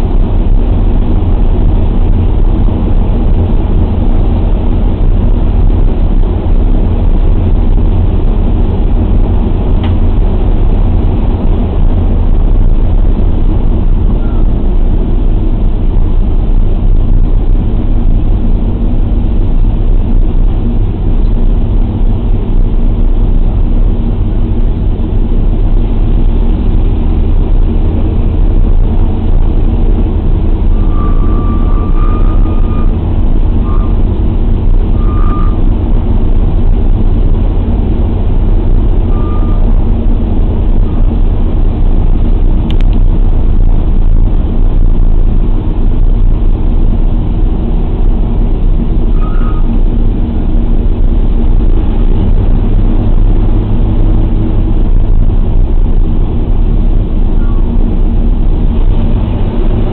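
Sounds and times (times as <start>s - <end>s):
aircraft engines droning: 0.0s - 59.9s.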